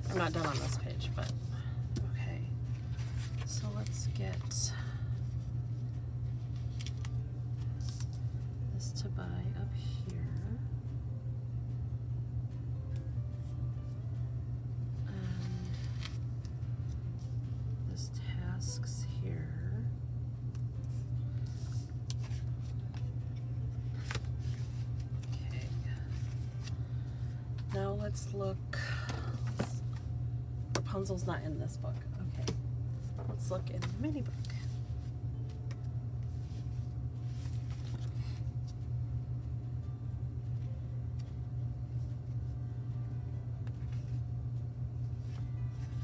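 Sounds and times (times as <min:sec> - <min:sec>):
steady low hum: 0:00.0 - 0:46.0.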